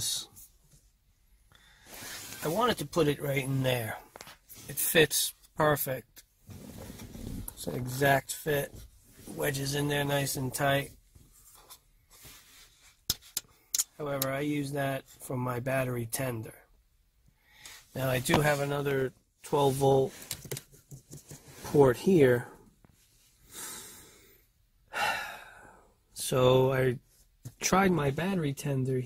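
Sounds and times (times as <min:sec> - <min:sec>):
man breathing: 0:01.4 - 0:02.4, 0:23.3 - 0:26.1.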